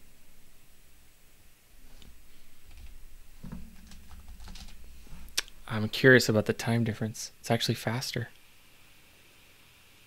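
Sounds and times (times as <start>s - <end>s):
typing on computer keyboard: 3.8s - 4.8s.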